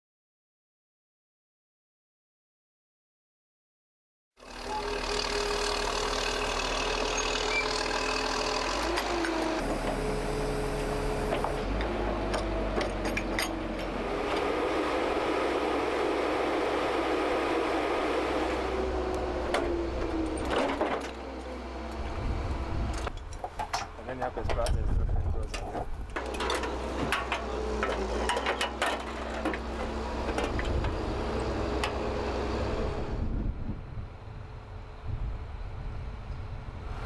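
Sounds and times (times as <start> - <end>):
tracked vehicle engine and hydraulics: 4.4 - 37.0.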